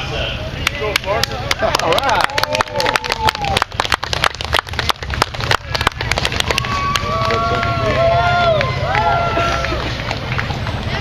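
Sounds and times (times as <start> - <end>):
crowd applause: 0.8 - 11.0.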